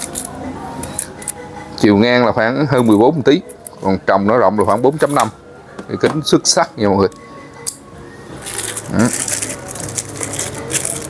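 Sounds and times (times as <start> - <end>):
plastic bag crinkling: 8.4 - 11.0.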